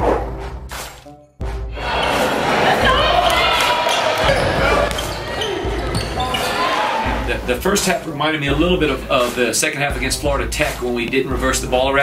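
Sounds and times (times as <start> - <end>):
voices echoing in a gym: 1.9 - 7.8
basketball bouncing on court: 2.8 - 6.6.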